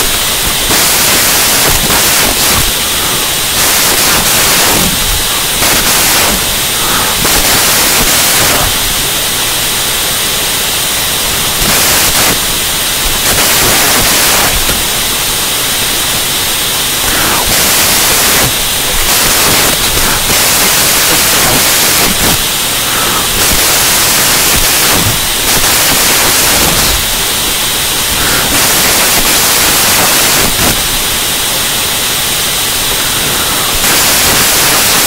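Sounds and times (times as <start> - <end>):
electronic static hiss: 0.0 - 35.0.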